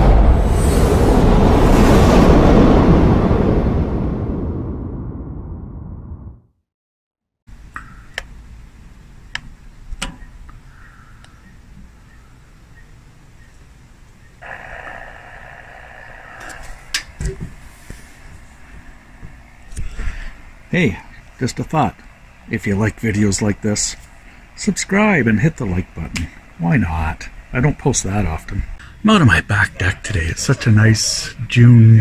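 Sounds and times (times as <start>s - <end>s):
loud rush of noise: 0.0s - 6.4s, 14.4s - 19.6s
radio static hiss: 14.4s - 32.0s.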